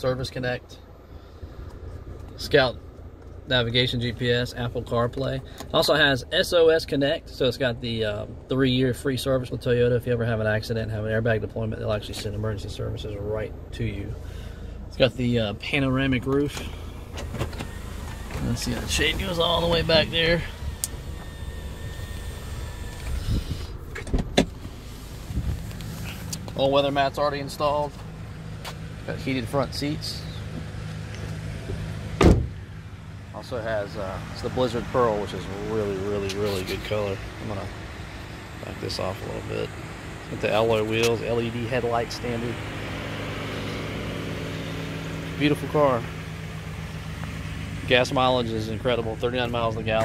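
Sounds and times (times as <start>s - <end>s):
car engine idling: 0.0s - 50.0s
electric motor whine: 17.0s - 26.1s.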